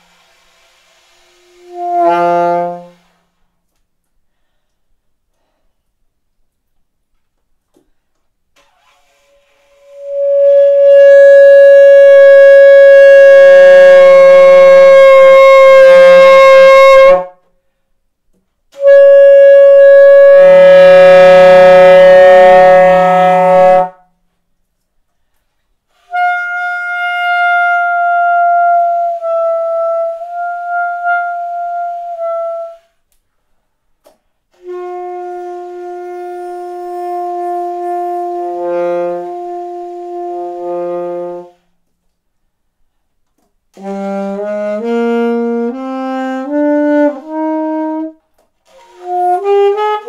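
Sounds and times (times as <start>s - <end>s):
alto saxophone long notes: 0.2s - 3.4s, 9.7s - 17.4s, 18.8s - 24.0s, 25.9s - 33.0s, 34.5s - 41.8s, 43.8s - 50.0s.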